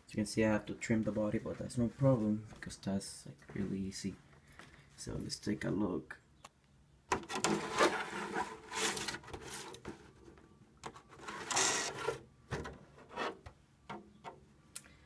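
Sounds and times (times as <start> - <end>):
plastic truck body rustling: 7.1 - 13.5.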